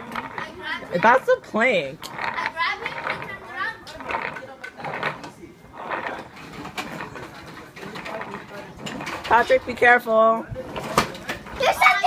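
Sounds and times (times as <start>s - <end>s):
distant children talking and calling: 0.0s - 1.4s, 2.1s - 5.2s, 10.8s - 12.0s.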